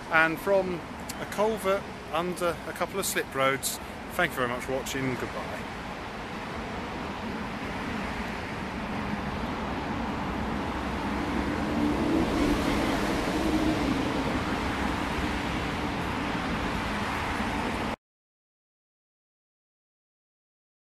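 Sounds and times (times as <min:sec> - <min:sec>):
road traffic: 0:00.0 - 0:18.0.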